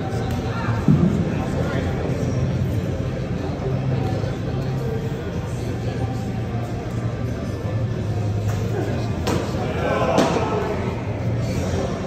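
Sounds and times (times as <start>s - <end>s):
low rumble in large hall: 0.0s - 12.0s.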